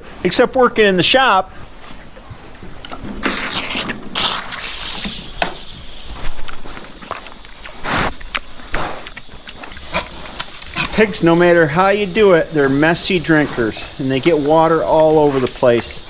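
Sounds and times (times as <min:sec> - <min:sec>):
pigs slurping and splashing water: 0:03.1 - 0:16.0.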